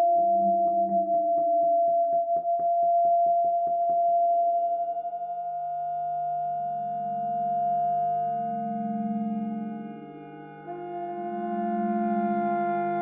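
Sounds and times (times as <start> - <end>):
pulsing held tone: 0.0 - 10.8
low wavering tone: 0.0 - 13.0.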